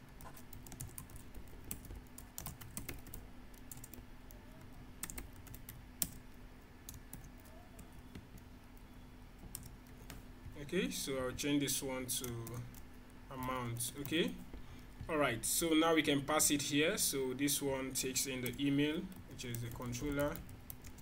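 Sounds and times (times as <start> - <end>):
faint steady hum: 0.0 - 21.0
typing on computer keyboard: 0.2 - 6.3, 9.4 - 10.2, 18.4 - 21.0.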